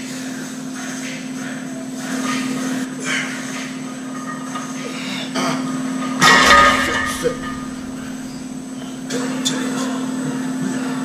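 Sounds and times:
weight plates metal clank: 6.0s - 9.1s.

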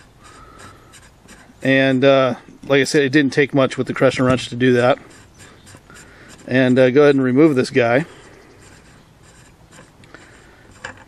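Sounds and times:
metal-on-metal rubbing with clicks: 0.0s - 2.0s, 3.9s - 11.0s.

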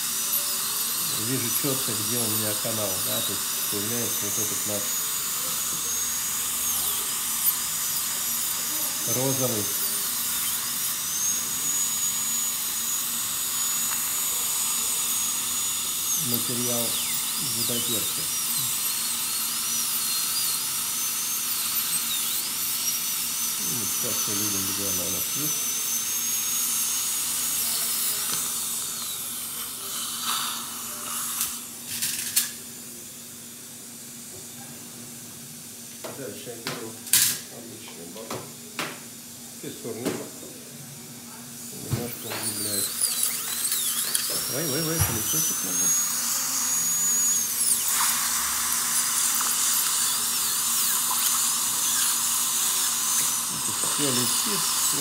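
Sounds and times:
dental drill whining: 0.0s - 55.0s.

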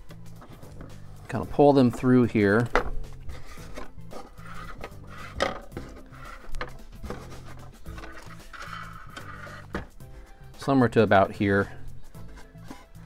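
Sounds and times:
soft background music: 0.0s - 13.0s
plastic tubing rubbing and tapping: 1.8s - 10.0s, 12.1s - 13.0s.

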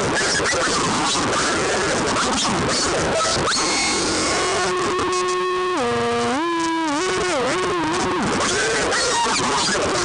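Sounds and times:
distorted electric guitar note: 0.0s - 10.0s.

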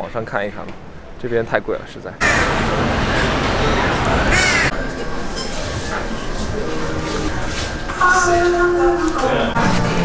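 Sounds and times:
outdoor background noise: 0.0s - 10.0s
crow cawing: 2.2s - 2.6s, 4.3s - 4.7s.

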